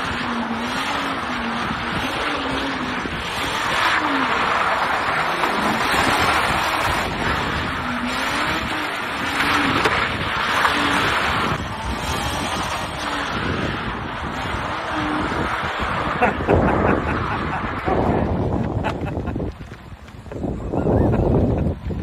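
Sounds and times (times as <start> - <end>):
car engine revving: 0.0 - 19.4
tyre and wind noise: 0.0 - 22.0
wind buffeting microphone: 5.3 - 22.0.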